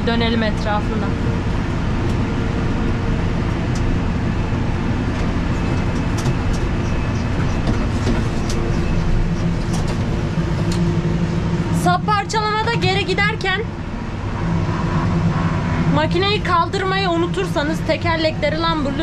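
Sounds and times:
tractor engine running: 0.0s - 19.0s.

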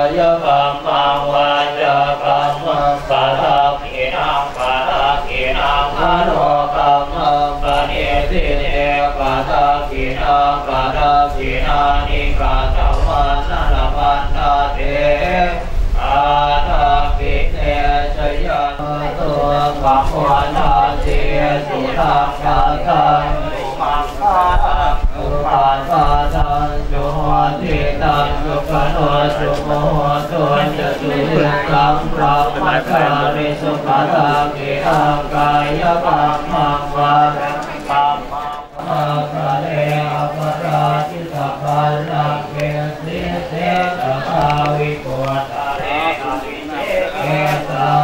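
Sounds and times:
monks chanting: 0.0s - 48.0s.

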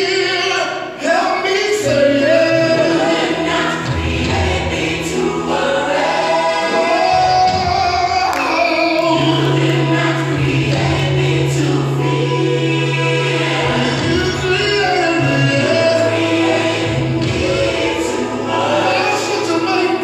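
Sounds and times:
choir singing gospel music: 0.0s - 20.0s
sustained bass notes: 8.8s - 20.0s.

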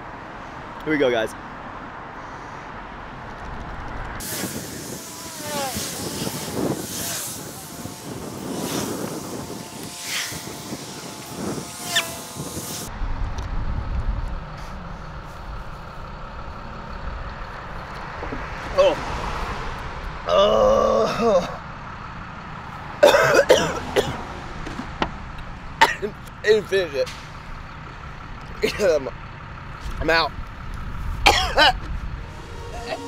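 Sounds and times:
low engine rumble: 0.0s - 33.0s
road traffic: 0.0s - 33.0s
large vehicle brakes hissing: 31.0s - 33.0s.

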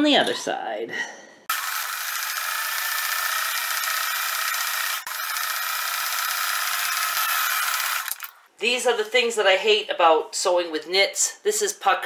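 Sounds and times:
electric sewing machine stitching: 1.5s - 8.3s.

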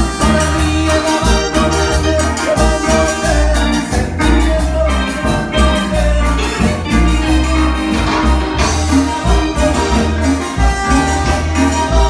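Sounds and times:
bass line: 0.0s - 12.0s
congas and percussion: 0.0s - 12.0s
organ-like keyboard: 0.0s - 12.0s.

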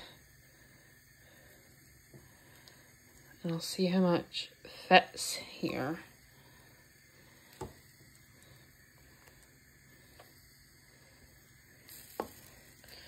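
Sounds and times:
bread frying in a pan: 0.0s - 13.0s.

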